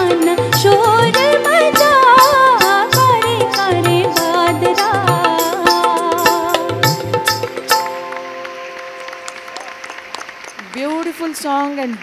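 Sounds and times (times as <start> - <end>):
held chord of live music: 0.0 - 10.6
audience applauding: 7.3 - 12.0.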